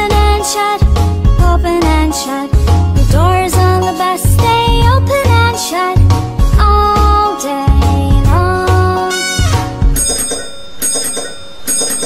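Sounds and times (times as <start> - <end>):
bus bell ringing: 9.9 - 12.0.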